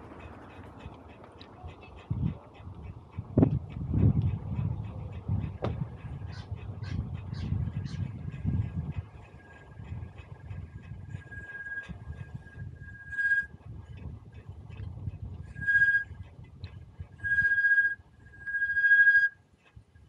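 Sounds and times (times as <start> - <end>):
rumble of wind and tyres: 0.0 - 20.0
bicycle brakes squealing: 11.1 - 13.5, 15.5 - 16.1, 17.2 - 19.4.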